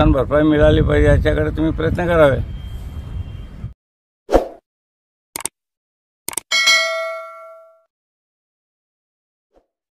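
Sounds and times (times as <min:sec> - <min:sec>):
quick clicks: 0:05.4 - 0:05.6, 0:06.3 - 0:06.5
bell ding: 0:06.5 - 0:07.9.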